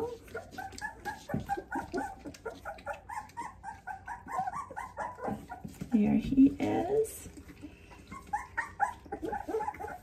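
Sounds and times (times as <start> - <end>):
puppy whimpering: 0.0 - 10.0.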